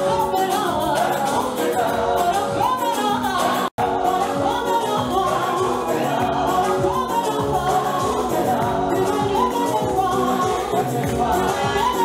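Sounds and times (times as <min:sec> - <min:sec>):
choir singing gospel: 0:00.0 - 0:12.0
instrumental backing with beat: 0:00.0 - 0:12.0
male lead vocalist singing: 0:00.0 - 0:12.0.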